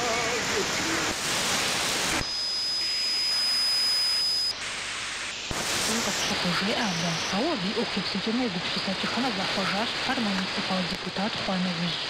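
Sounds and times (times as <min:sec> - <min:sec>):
radio static hiss: 0:00.0 - 0:12.0
broadcast voice: 0:05.8 - 0:12.0.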